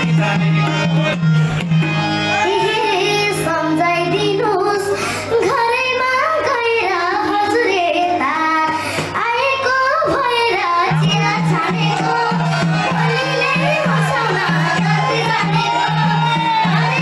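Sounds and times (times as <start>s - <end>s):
live instrumental backing: 0.0s - 17.0s
girl singing into a microphone: 2.4s - 17.0s.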